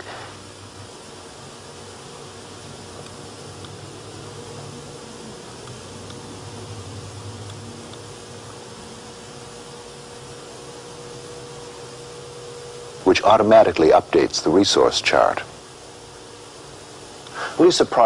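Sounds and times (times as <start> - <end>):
hiss: 0.0 - 0.5, 17.3 - 17.9
electrical hum: 0.0 - 18.0
faint buzzing tone: 0.0 - 18.0.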